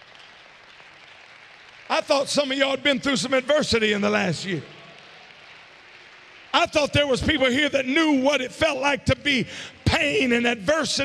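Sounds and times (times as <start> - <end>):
man speaking: 1.9 - 4.8, 6.6 - 11.0.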